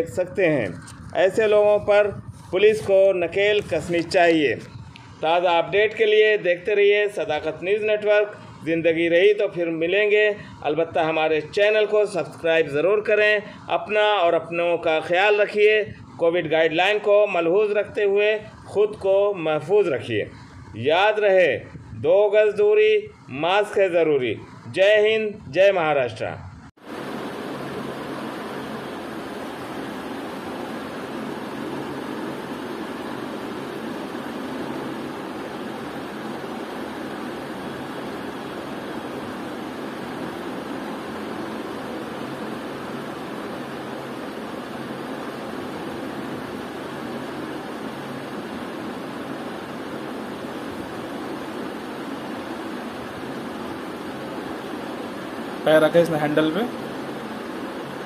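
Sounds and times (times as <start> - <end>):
steady hiss: 0.0 - 58.0.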